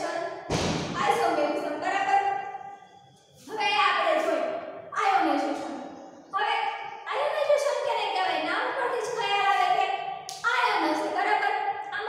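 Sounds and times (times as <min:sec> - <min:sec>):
woman lecturing: 0:00.0 - 0:00.4, 0:01.0 - 0:02.6, 0:03.4 - 0:12.0
loud thump: 0:00.5 - 0:01.1.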